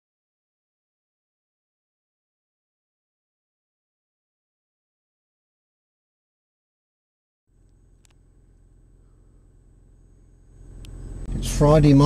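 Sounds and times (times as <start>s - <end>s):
car engine idling: 7.6s - 12.0s.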